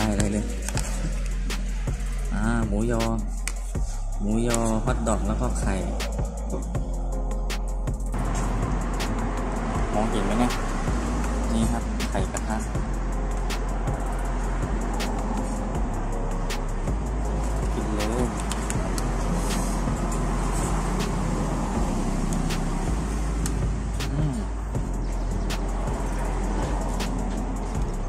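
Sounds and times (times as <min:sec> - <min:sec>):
road traffic noise: 0:00.0 - 0:28.0.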